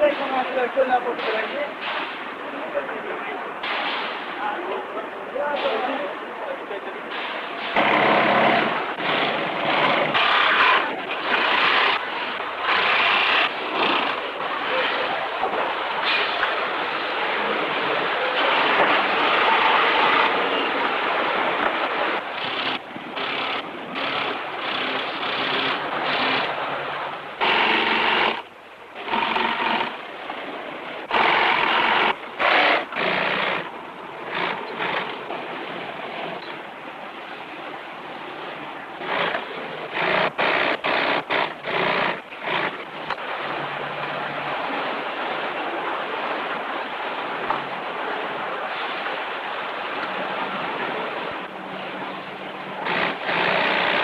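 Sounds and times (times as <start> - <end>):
steady machine din: 7.7 - 12.0, 22.4 - 26.6, 27.4 - 28.4, 31.1 - 33.7
industrial sewing machines running: 7.7 - 14.9, 18.4 - 26.8, 27.4 - 28.4, 29.0 - 30.0, 31.1 - 33.7, 34.3 - 35.2, 39.0 - 42.8, 52.8 - 54.0.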